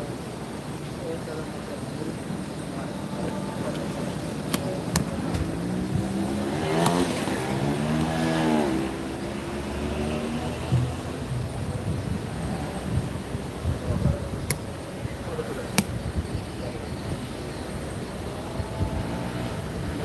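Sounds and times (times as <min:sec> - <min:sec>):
vehicle engine passing by: 0:05.3 - 0:11.8, 0:18.4 - 0:20.0
sharp clicks: 0:15.7 - 0:16.0.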